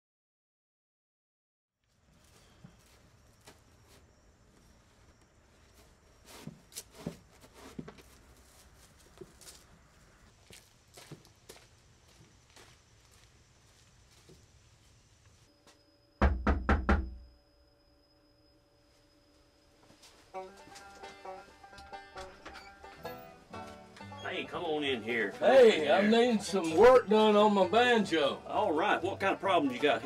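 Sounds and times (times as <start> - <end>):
knocking on door: 16.2 - 17.2.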